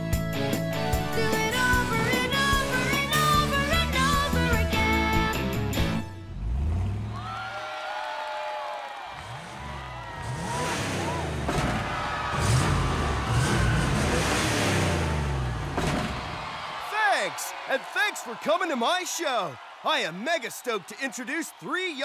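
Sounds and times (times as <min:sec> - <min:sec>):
music: 0:00.0 - 0:06.6
cartoon truck engine revving: 0:05.8 - 0:07.3, 0:09.2 - 0:16.4.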